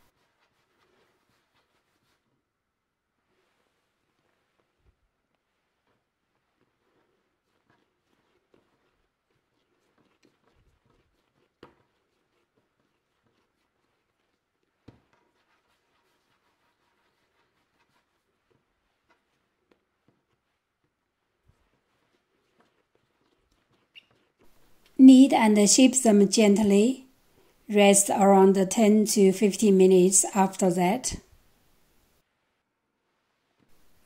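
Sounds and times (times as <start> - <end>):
hands shaping dough: 0.0 - 34.0.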